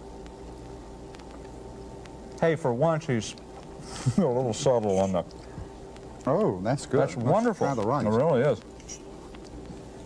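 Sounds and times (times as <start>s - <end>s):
low hum and hiss: 0.0s - 10.0s.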